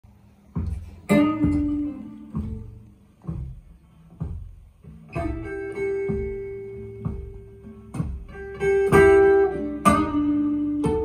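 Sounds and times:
plucked guitar notes over speakers: 0.5 - 11.0.

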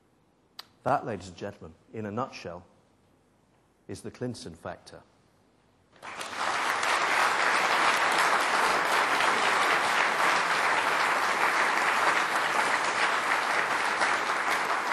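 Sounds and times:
audience applause: 6.0 - 14.9.

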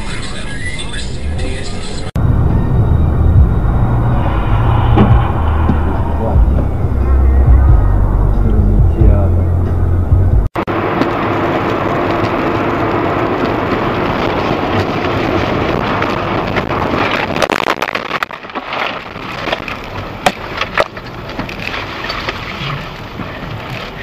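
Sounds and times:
road and wind noise inside car: 0.0 - 24.0.

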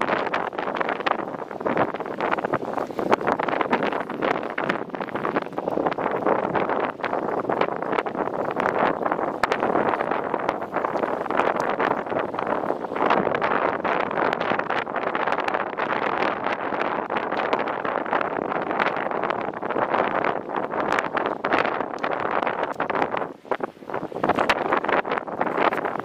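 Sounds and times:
small crackles: 0.0 - 16.0, 20.8 - 26.0
wind rushing across microphone: 0.0 - 26.0.

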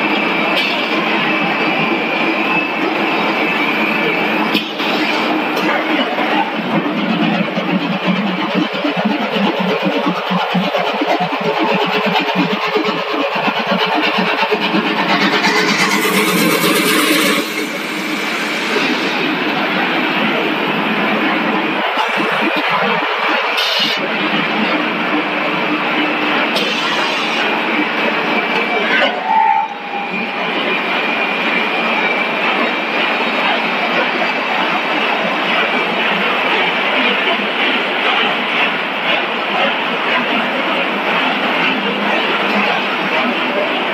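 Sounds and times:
steady machine hum: 4.0 - 19.6
loud mechanical din: 4.4 - 19.6.

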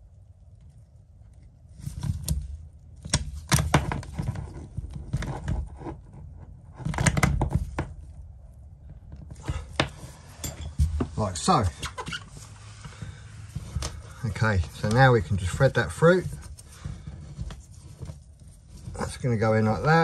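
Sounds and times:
gloved hands handling cables: 0.6 - 20.0.

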